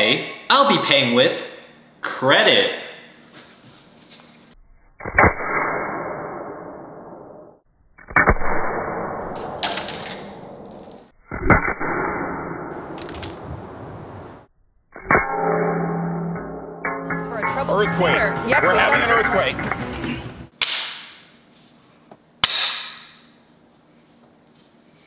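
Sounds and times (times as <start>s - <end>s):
card slammed on stone countertop: 9.4s - 11.1s.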